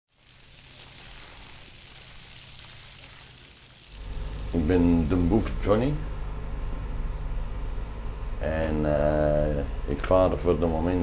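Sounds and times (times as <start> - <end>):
hose spraying onto wooden deck: 0.1 - 6.1
low steady hum: 3.8 - 11.0.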